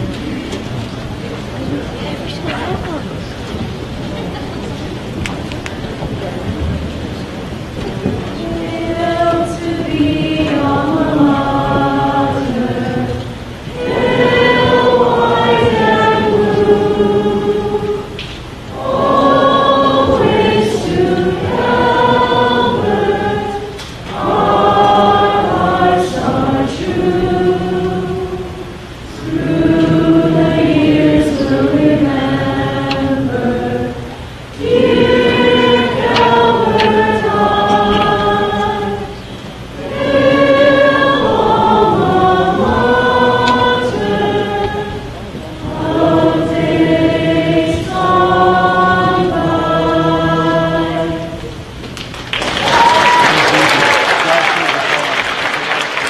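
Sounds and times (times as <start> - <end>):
group of voices singing: 8.3 - 51.7.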